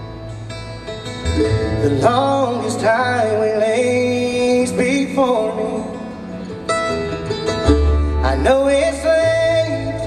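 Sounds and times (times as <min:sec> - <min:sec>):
acoustic guitar picking: 0:00.0 - 0:10.0
mandolin picking: 0:00.0 - 0:10.0
upright bass: 0:00.0 - 0:10.0.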